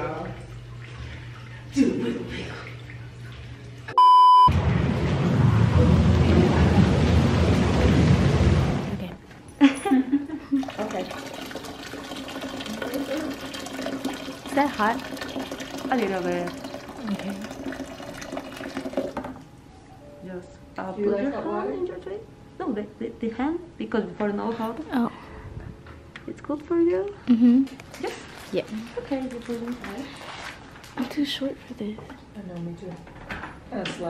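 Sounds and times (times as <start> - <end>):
hot tub jets churning water: 0.0 - 3.9, 4.5 - 9.1, 10.6 - 19.4
electronic test-tone beep: 4.0 - 4.5.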